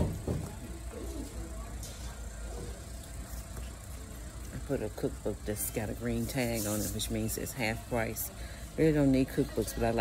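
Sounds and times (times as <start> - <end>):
low store background rumble: 0.0 - 10.0.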